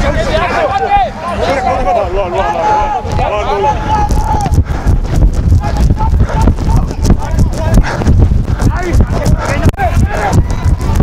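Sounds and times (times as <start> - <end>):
knocking and rumbling on microphone: 3.1 - 11.0.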